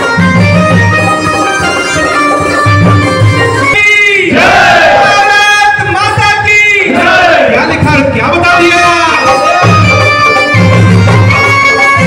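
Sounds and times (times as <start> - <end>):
man shouting through microphone: 3.7 - 9.9
crowd of men shouting: 4.2 - 5.7, 6.8 - 7.7.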